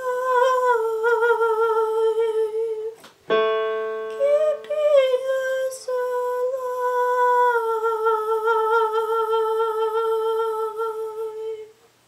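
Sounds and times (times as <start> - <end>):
woman singing long note: 0.0 - 3.0, 4.0 - 11.7.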